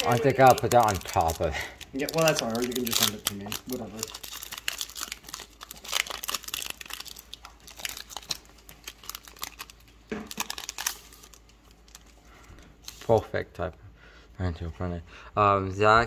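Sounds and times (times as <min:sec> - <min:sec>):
foil wrapper crinkling and tearing: 0:00.0 - 0:13.2.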